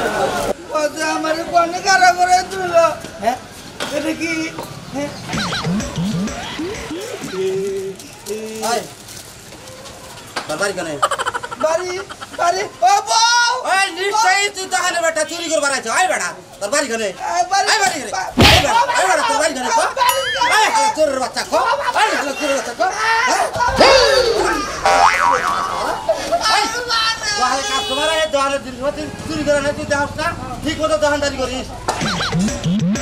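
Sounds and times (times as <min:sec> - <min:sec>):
boing-like warble: 0:05.3 - 0:07.4, 0:23.8 - 0:26.2
cartoon falling pitch glide: 0:05.3 - 0:07.4, 0:23.7 - 0:26.2.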